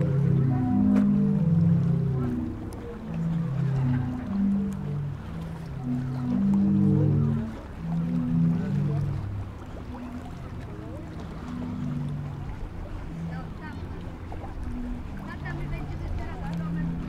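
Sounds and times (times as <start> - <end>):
faint voices of passers-by: 0.0 - 17.0
sea organ pipes holding notes: 0.0 - 17.0.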